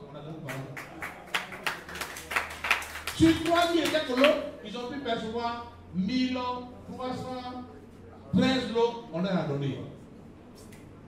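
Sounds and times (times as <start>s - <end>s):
scattered hand-clapping: 0.4s - 4.4s.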